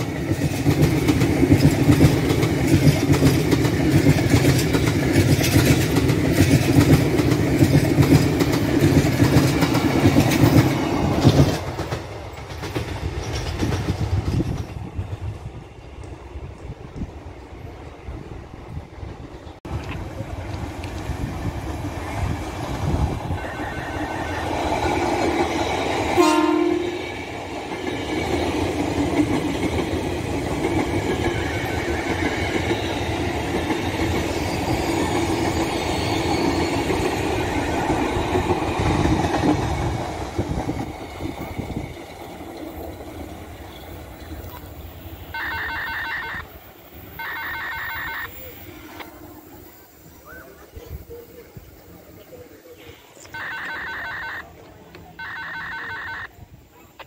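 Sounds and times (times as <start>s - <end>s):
train wheels rumbling over rails: 0.0s - 55.4s
train horn toot: 23.4s - 24.6s, 26.2s - 27.2s, 48.0s - 49.6s
short pitched signals: 53.2s - 54.5s, 55.2s - 56.3s.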